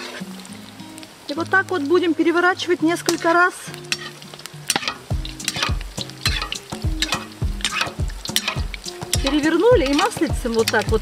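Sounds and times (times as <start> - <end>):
oil sizzling and crackling: 0.0 - 11.0
spoon moving food in oil: 0.0 - 11.0.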